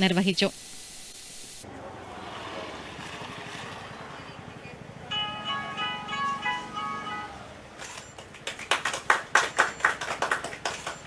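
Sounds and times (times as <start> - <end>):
crowd room noise hiss: 0.0 - 4.0.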